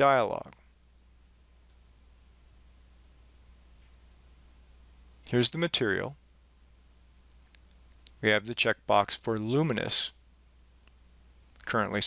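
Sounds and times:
low steady hum: 0:00.0 - 0:12.0
faint computer mouse clicks: 0:07.3 - 0:08.2.

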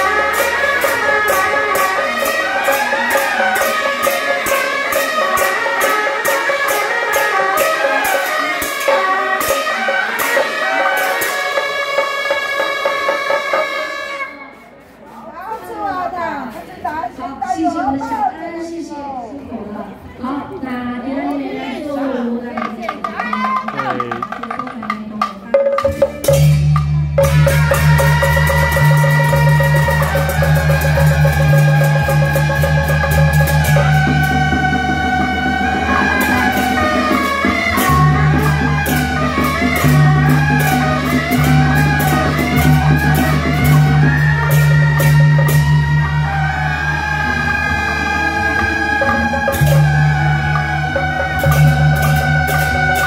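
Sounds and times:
shawms playing loud melody: 0:00.0 - 0:14.8, 0:22.6 - 0:53.0
voices: 0:00.0 - 0:53.0
drum gong and cymbal strokes: 0:25.8 - 0:53.0.

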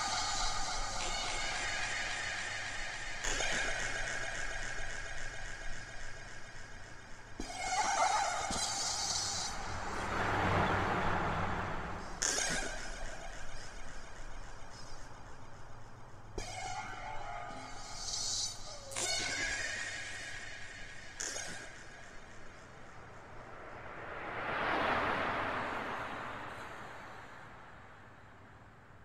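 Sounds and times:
noisy wash: 0:00.0 - 0:12.5, 0:22.7 - 0:28.7.

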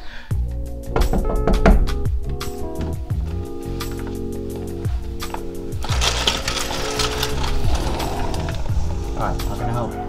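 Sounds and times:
background music with low beat: 0:00.3 - 0:06.3
metal gate clinking and rattling: 0:05.2 - 0:09.9.

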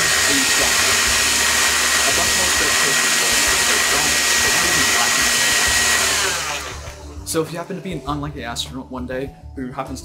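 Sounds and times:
vacuum cleaner motor running: 0:00.0 - 0:07.0.

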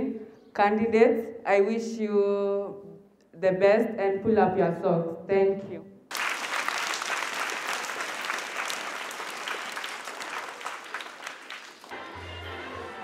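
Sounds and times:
children applauding: 0:06.1 - 0:13.0.

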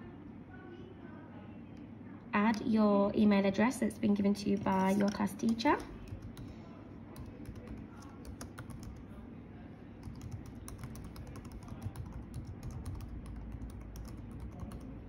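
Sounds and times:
keyboard typing clicks: 0:07.2 - 0:09.0, 0:10.0 - 0:14.9.

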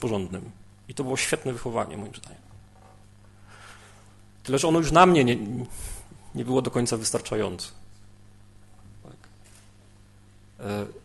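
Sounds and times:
electrical hum from sound system: 0:00.0 - 0:11.0.

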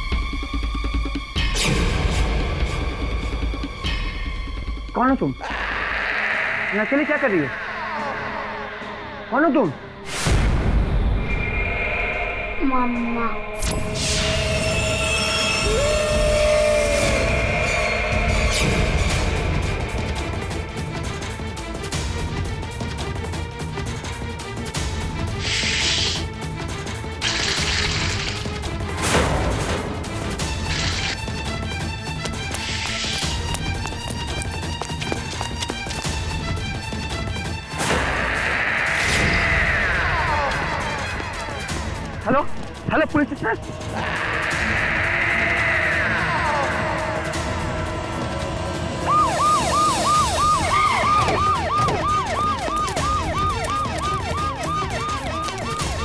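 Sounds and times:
background score with low drone: 0:04.9 - 0:22.6
police siren yelping: 0:14.0 - 0:18.8, 0:38.3 - 0:42.1, 0:44.0 - 0:56.0.

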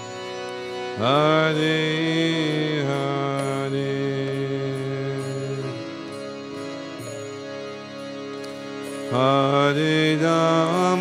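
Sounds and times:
harmonium chords: 0:00.0 - 0:11.0.

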